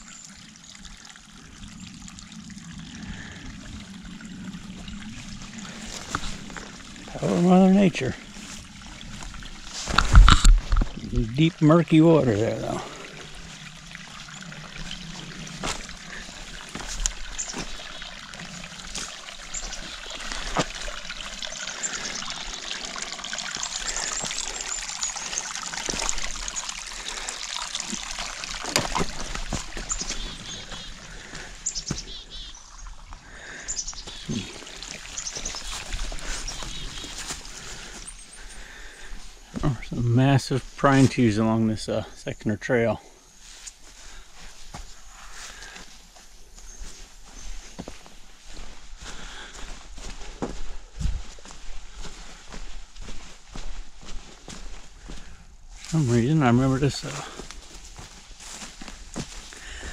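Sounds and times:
water trickling and splashing: 0.0s - 59.9s.

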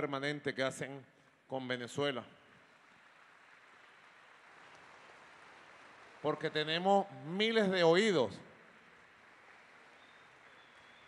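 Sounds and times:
faint audience applause: 2.5s - 11.0s.

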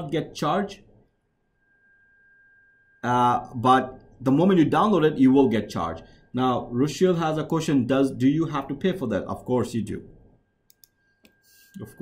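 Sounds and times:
faint steady high tone: 0.0s - 12.0s.

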